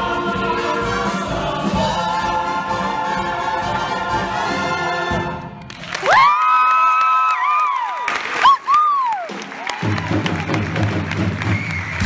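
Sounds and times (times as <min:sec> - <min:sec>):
audience applauding: 0:05.6 - 0:12.0
short high whistle: 0:11.5 - 0:12.0.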